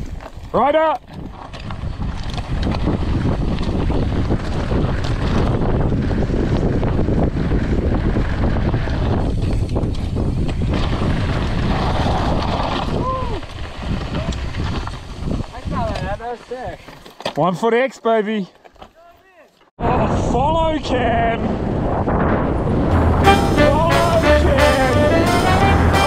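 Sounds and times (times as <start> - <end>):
wind buffeting microphone: 0.0 - 16.3, 19.8 - 23.3
bike tyres over gravel and rocks: 0.0 - 17.8, 18.4 - 19.7
person whooping shout: 13.0 - 13.4.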